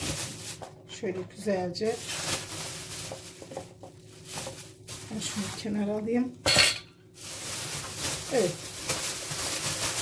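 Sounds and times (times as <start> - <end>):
plastic bag crinkling: 0.0 - 6.4, 7.0 - 10.0.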